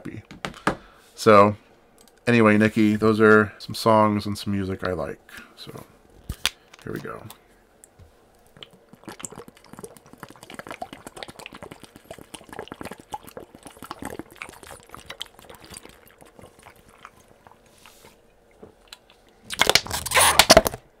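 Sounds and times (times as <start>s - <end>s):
man gulping water: 8.5s - 17.7s
plastic bottle crinkling: 19.5s - 20.8s.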